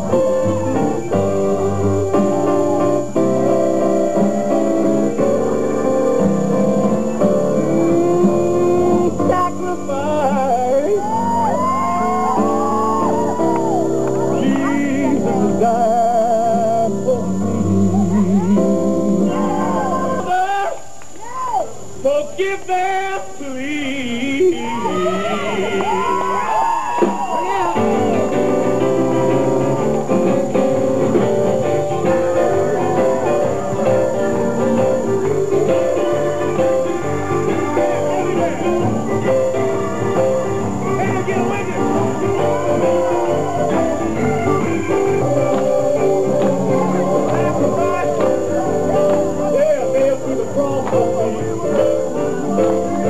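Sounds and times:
held keyboard chords: 0:00.0 - 0:20.3, 0:27.6 - 0:53.0
gospel band playing: 0:00.0 - 0:20.6, 0:22.0 - 0:53.0
bending gliding lead melody: 0:27.9 - 0:53.0.

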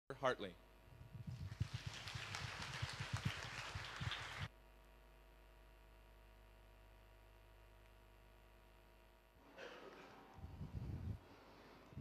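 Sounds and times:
audience applause: 0:01.3 - 0:04.5.

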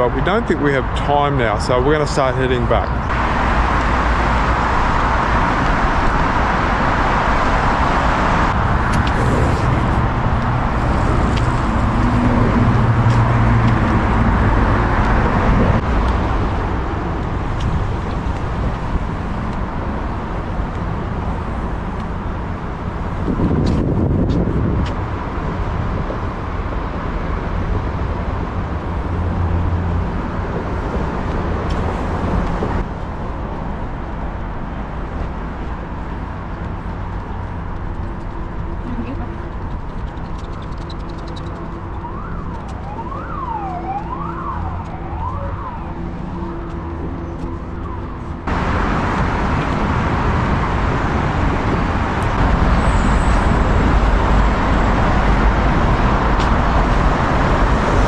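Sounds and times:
vehicle passing: 0:00.0 - 0:22.2
road traffic noise: 0:00.0 - 0:58.0.

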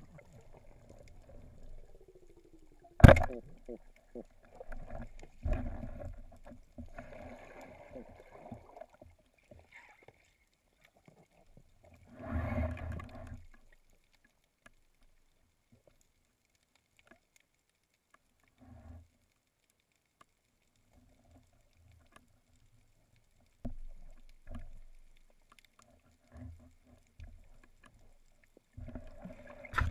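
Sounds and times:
churning water and bubbles: 0:00.0 - 0:10.1, 0:26.1 - 0:29.9
faint clicks and ticks underwater: 0:00.0 - 0:29.9
dull knocks underwater: 0:03.0 - 0:07.1, 0:28.8 - 0:29.9.

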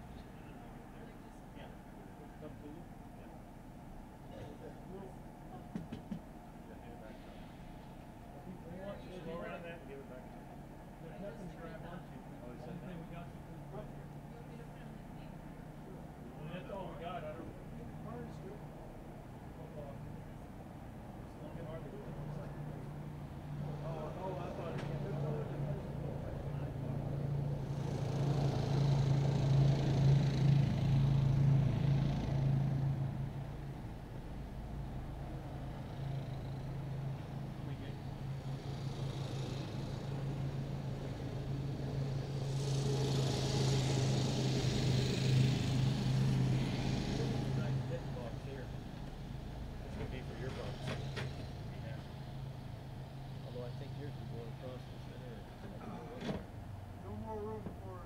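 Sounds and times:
vehicle engine idling: 0:00.0 - 0:58.0.

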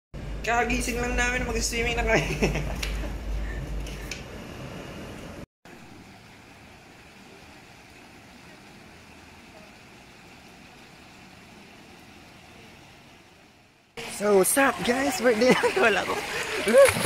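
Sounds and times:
faint outdoor background noise: 0:01.9 - 0:17.0.

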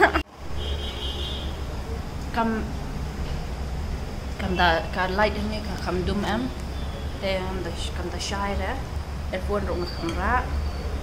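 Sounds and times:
woman's voice: 0:02.3 - 0:02.8, 0:04.4 - 0:06.6, 0:07.2 - 0:10.5.

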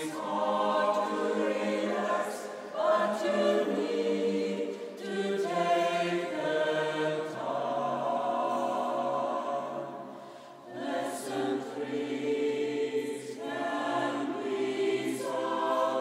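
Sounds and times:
mixed choir singing: 0:00.0 - 0:16.0
singers breathing: 0:10.1 - 0:10.7.

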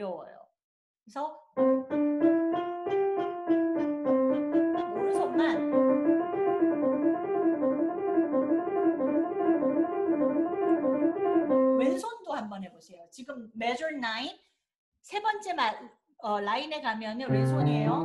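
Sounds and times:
woman talking: 0:00.0 - 0:00.4, 0:01.1 - 0:01.4, 0:04.9 - 0:05.6, 0:11.8 - 0:14.4, 0:15.1 - 0:18.0
piano five-finger exercise: 0:01.6 - 0:12.0, 0:17.3 - 0:18.0.

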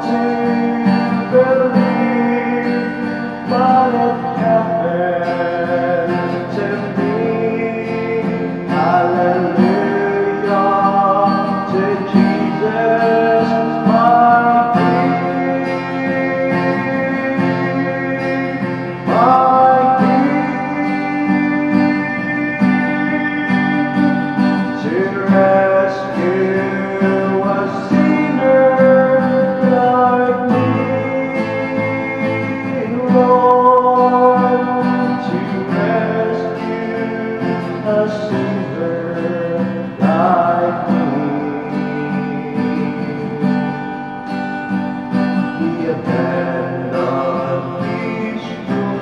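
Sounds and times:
man singing gospel song: 0:00.0 - 0:44.0, 0:45.4 - 0:49.0
strummed acoustic guitar: 0:00.0 - 0:49.0.

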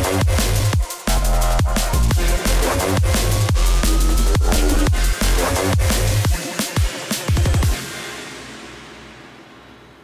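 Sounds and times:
electronic drum and bass music: 0:00.0 - 0:08.9.

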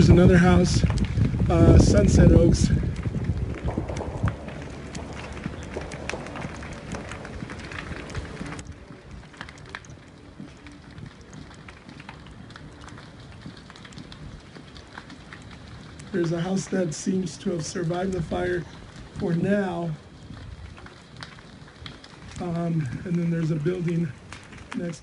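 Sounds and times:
wildfire crackling in wind: 0:00.0 - 0:25.0.

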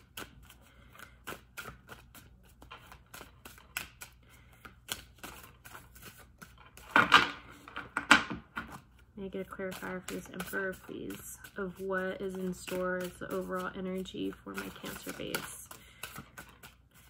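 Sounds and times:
cards being shuffled: 0:00.0 - 0:08.0, 0:08.6 - 0:17.0.

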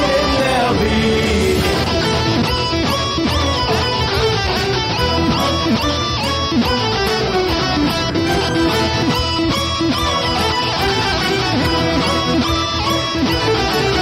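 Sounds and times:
electronic keyboard playing rock: 0:00.0 - 0:14.0.

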